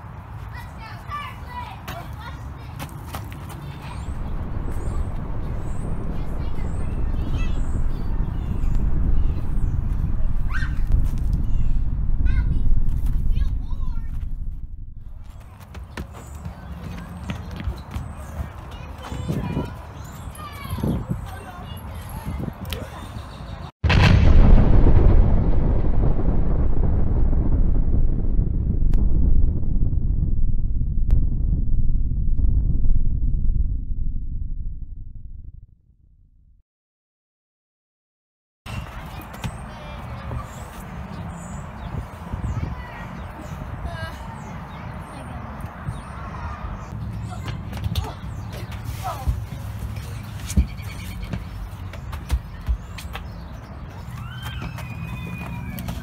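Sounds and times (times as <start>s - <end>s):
explosion low rumble: 3.9s - 15.4s, 23.8s - 36.6s.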